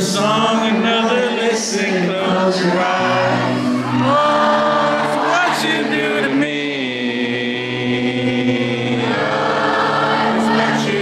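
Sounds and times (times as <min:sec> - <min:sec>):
crowd singing along: 0:00.0 - 0:11.0
guitar-backed music: 0:00.0 - 0:11.0.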